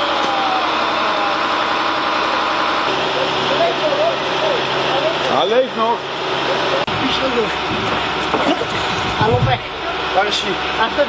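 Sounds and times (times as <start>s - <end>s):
street background noise: 0.0s - 11.0s
people talking indistinctly: 0.3s - 11.0s.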